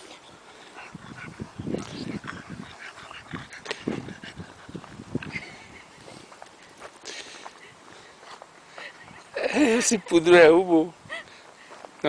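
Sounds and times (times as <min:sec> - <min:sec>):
scuffs in sandy dirt: 0:00.1 - 0:09.4.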